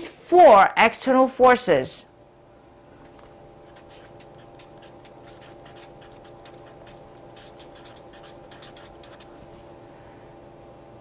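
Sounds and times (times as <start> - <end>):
marker scratching on paper: 3.6 - 9.4.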